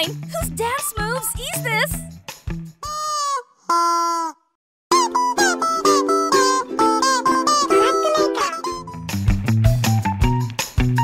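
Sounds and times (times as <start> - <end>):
plucked-string music: 4.9 - 10.6.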